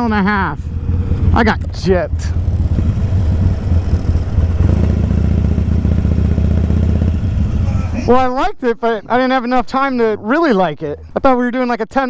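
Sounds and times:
motorcycle engine rumbling: 0:00.0 - 0:12.0.

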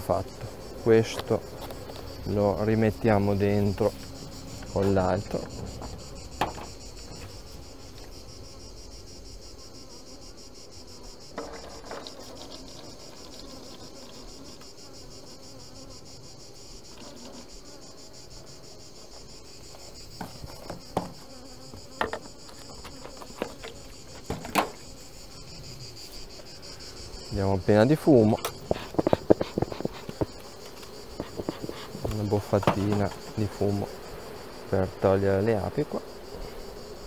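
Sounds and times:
honeybees humming: 0:00.0 - 0:37.0
insects chirring: 0:00.0 - 0:37.0.

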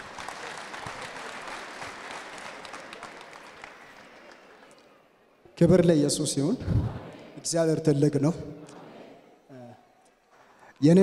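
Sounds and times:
crowd applauding: 0:00.0 - 0:05.2.

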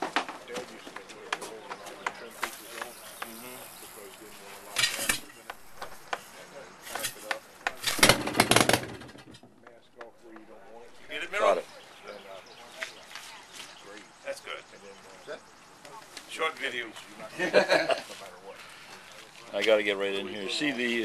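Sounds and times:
marine engine popping: 0:07.6 - 0:11.5.

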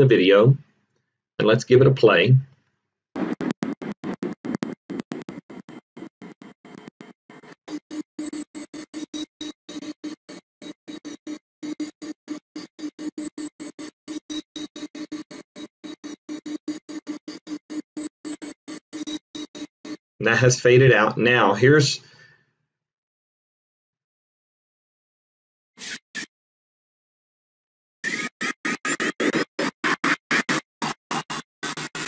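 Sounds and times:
stuttering music-like playback: 0:03.2 - 0:20.0, 0:28.1 - 0:32.0.

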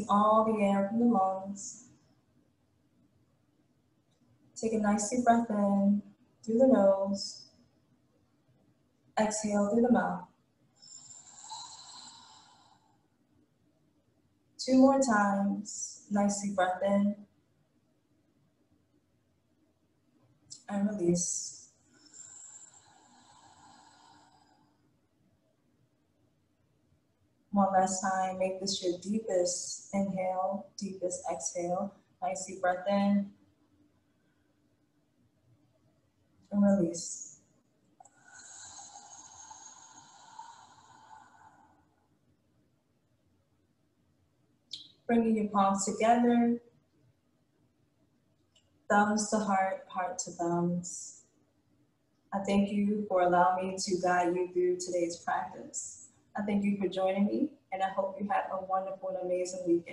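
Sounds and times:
woman exhaling: 0:38.1 - 0:41.8.

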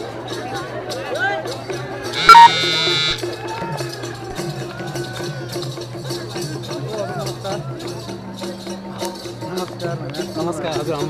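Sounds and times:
harsh buzzing tone: 0:02.2 - 0:03.2.

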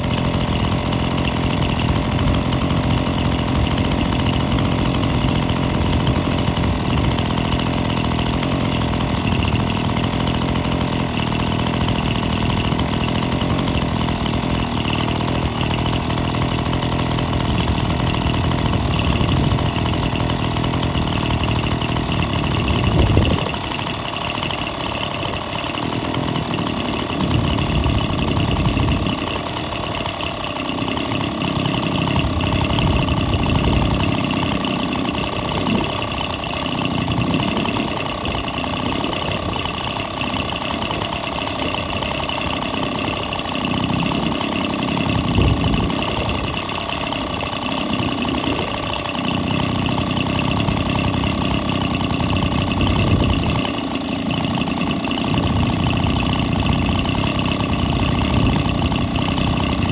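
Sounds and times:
two-stroke stationary engine running: 0:00.0 - 0:59.9.

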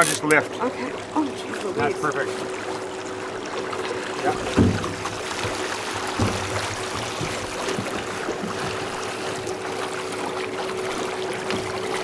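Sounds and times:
water splashing and sloshing: 0:00.0 - 0:12.0
fish thrashing at water surface: 0:01.1 - 0:10.2.

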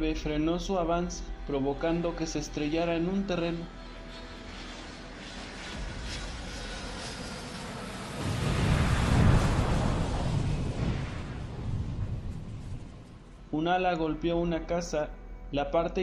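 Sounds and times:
rushing noise: 0:03.4 - 0:13.6
explosion blast: 0:05.7 - 0:13.5.

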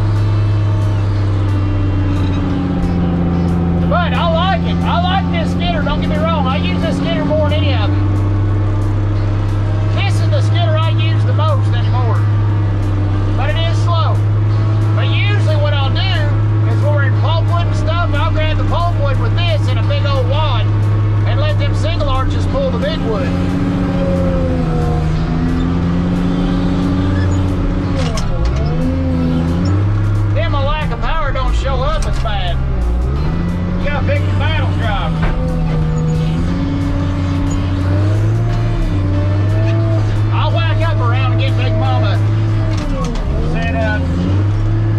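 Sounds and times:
diesel engine running under load: 0:00.0 - 0:44.9.

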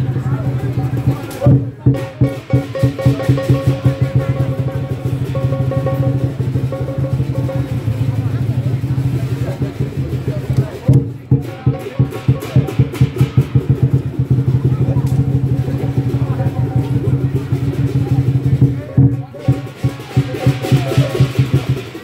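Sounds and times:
big drum beaten rapidly: 0:00.0 - 0:22.0
cymbals: 0:00.0 - 0:22.0.

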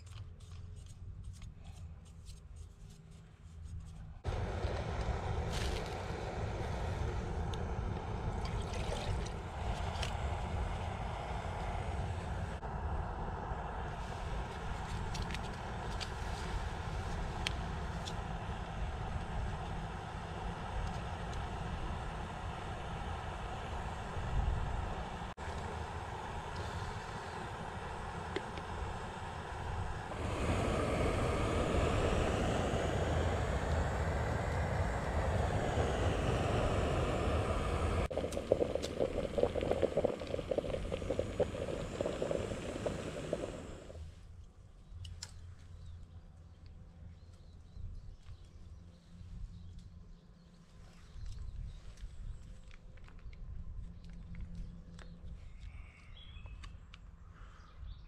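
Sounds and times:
gas stove burner hissing: 0:14.0 - 0:44.0.

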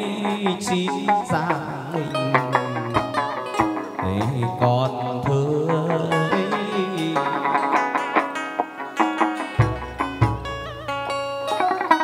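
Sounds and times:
person singing long gliding notes: 0:00.0 - 0:08.2
sharp percussion clicks: 0:00.0 - 0:11.8
plucked strings: 0:00.0 - 0:12.0.

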